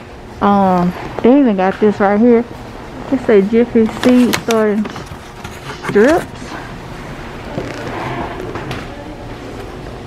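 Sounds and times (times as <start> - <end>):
retail store background noise: 0.0 - 10.0.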